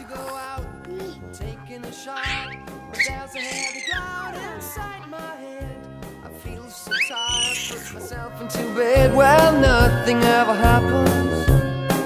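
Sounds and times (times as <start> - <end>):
pop music: 0.0 - 12.0
baby squealing: 2.0 - 5.0, 6.8 - 8.2.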